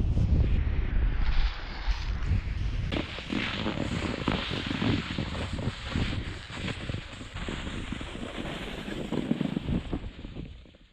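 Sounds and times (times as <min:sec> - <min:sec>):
wind buffeting microphone: 0:00.0 - 0:10.8
snowboard sliding over snow: 0:00.1 - 0:10.9.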